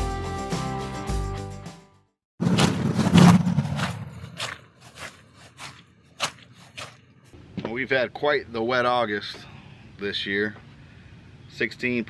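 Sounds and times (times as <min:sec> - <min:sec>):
rustling scuff: 0:03.2 - 0:07.1
footsteps on grass: 0:03.7 - 0:07.3.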